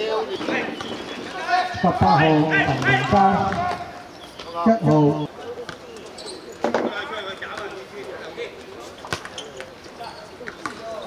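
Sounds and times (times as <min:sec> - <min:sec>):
players shouting: 0:00.0 - 0:05.3.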